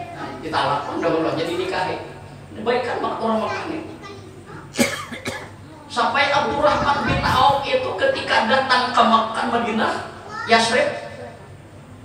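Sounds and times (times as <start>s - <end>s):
man coughing: 4.7s - 5.6s.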